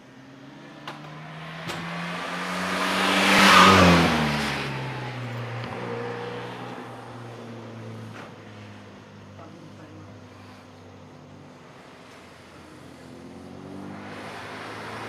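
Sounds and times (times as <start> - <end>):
car engine driving past: 0.2 - 15.0
tyre hiss on wet road: 8.0 - 10.9, 11.6 - 15.0.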